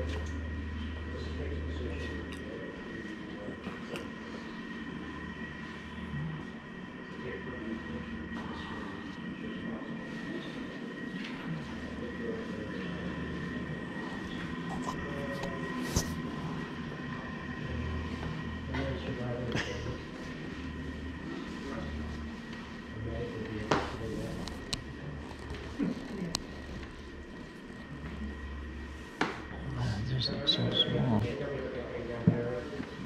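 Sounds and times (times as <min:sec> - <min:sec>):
thin high hum: 0:00.0 - 0:33.0
indistinct voices: 0:05.8 - 0:22.3, 0:29.5 - 0:32.9.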